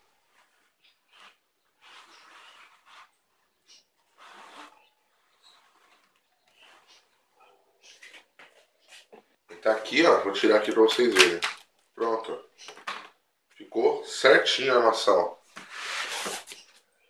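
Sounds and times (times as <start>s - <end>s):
cardboard rustles and scrapes: 4.1s - 7.0s, 15.6s - 16.7s.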